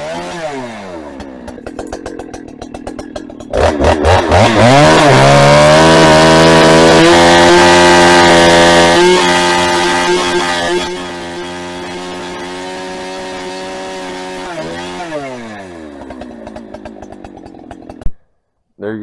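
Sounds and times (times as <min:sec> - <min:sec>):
chainsaw cutting through log: 0:00.0 - 0:18.2.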